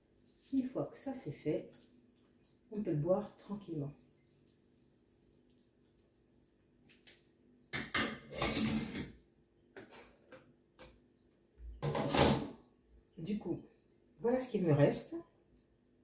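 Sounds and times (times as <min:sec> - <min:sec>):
kitchenware lifted and set down: 0:08.0 - 0:09.1.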